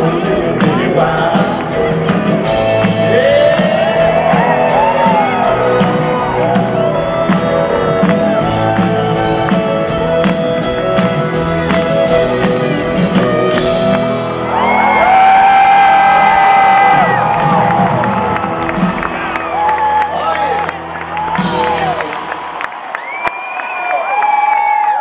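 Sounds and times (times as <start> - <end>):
country band playing live: 0.0 - 23.0
fans whooping and cheering: 2.8 - 12.1, 13.2 - 25.0.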